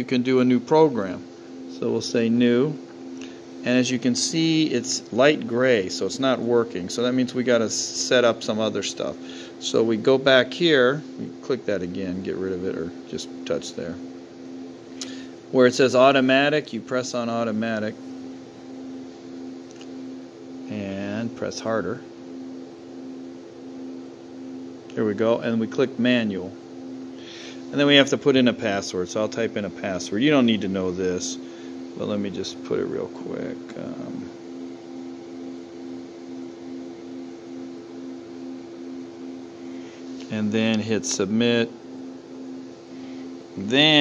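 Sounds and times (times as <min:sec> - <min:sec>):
low machine hum: 0:00.0 - 0:44.0.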